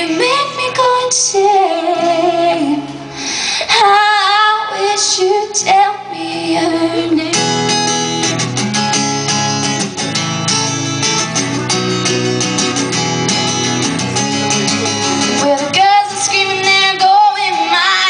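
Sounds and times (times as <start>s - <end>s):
woman singing: 0.0s - 3.0s, 3.6s - 7.8s, 15.4s - 18.0s
acoustic guitar strumming: 4.4s - 18.0s.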